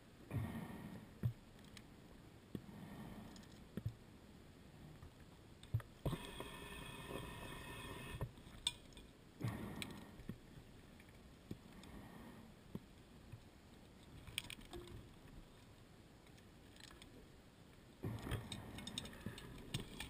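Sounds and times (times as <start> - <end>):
hissing regulator inhalation: 6.1 - 8.2
dive gear clicks and knocks: 14.1 - 15.2, 18.1 - 20.0.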